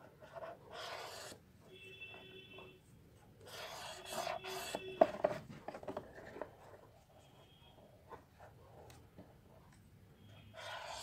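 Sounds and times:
felt-tip pen scratching on cardboard: 0:00.0 - 0:01.4, 0:03.4 - 0:05.4, 0:10.3 - 0:11.0.

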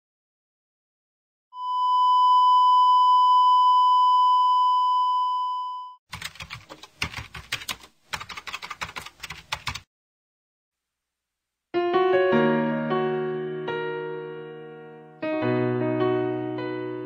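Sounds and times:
long electronic beep: 0:01.6 - 0:06.0
rapid typing keystrokes: 0:06.1 - 0:09.9.

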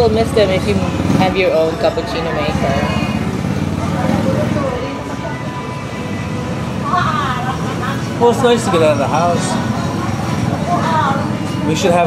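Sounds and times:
faint voices: 0:00.0 - 0:12.0
road traffic rumble: 0:00.0 - 0:12.0.

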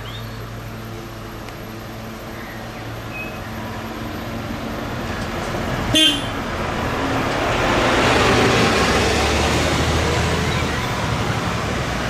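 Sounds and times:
bus engine drone: 0:00.0 - 0:12.0
road traffic: 0:00.0 - 0:12.0.

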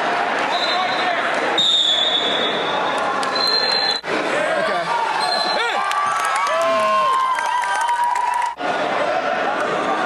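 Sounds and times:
spectators cheering and shouting: 0:00.0 - 0:10.0.

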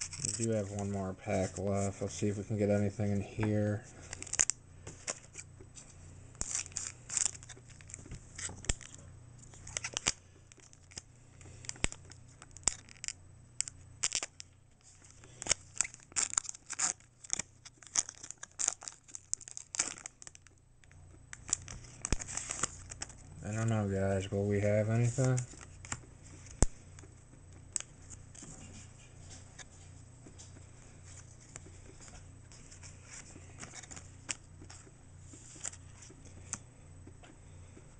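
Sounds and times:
foil wrapper crinkling: 0:00.0 - 0:29.8, 0:31.0 - 0:36.6.

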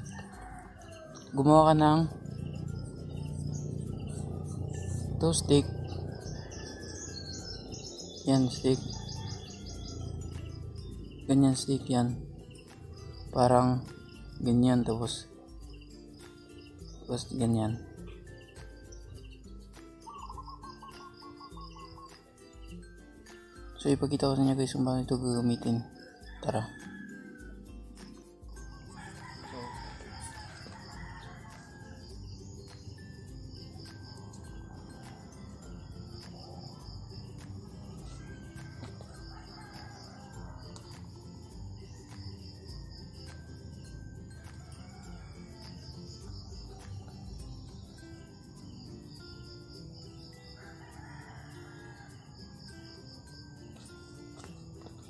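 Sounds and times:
rooster crowing: 0:00.0 - 0:01.4, 0:04.4 - 0:08.1, 0:08.7 - 0:10.6, 0:25.6 - 0:27.7, 0:28.7 - 0:32.4, 0:33.5 - 0:47.2, 0:50.2 - 0:53.4
high insect chirps: 0:00.0 - 0:55.0.

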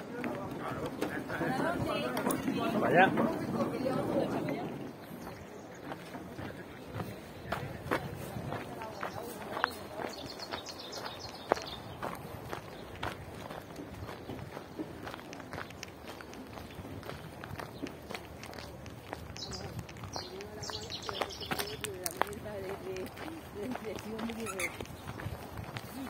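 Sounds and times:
footsteps on dirt path: 0:00.0 - 0:26.0.

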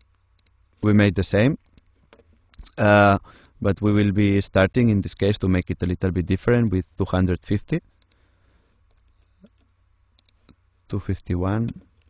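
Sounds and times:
computer mouse clicks: 0:00.0 - 0:00.6, 0:08.0 - 0:08.2, 0:08.9 - 0:10.6.

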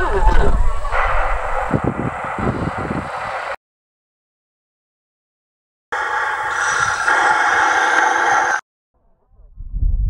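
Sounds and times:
harsh hissing through megaphones: 0:00.8 - 0:03.6, 0:06.0 - 0:08.6.

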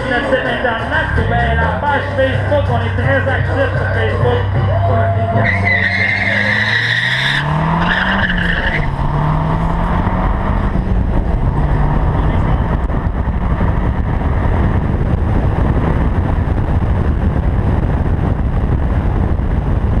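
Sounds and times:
car engine accelerating: 0:00.0 - 0:20.0
high squeal: 0:04.8 - 0:08.9
wind rush on microphone: 0:07.4 - 0:20.0.

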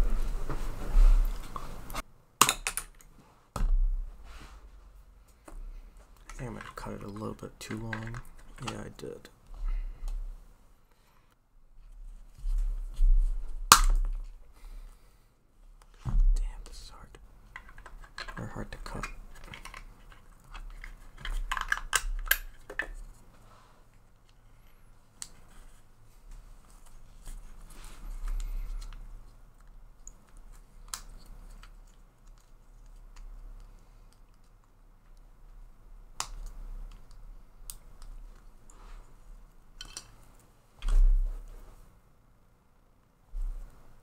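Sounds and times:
dull thump: 0:03.6 - 0:04.2
plastic parts clicking and tapping: 0:06.2 - 0:09.0, 0:17.5 - 0:23.0.

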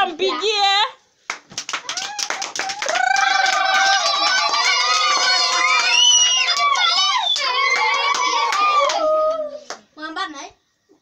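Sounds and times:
people clapping: 0:01.2 - 0:09.9.

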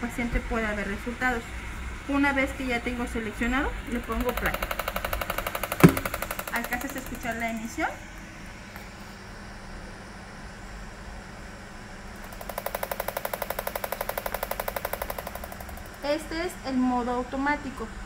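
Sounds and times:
rapid machine clicks: 0:03.9 - 0:07.8, 0:12.2 - 0:16.3.

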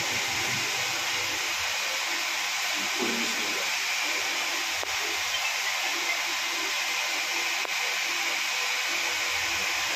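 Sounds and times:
steady hiss: 0:00.0 - 0:09.9.

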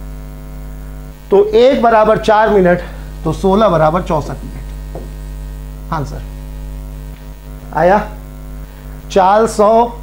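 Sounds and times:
electrical mains hum: 0:00.0 - 0:10.0
man speaking: 0:01.3 - 0:04.7, 0:05.9 - 0:06.4, 0:07.7 - 0:08.2, 0:09.1 - 0:10.0.

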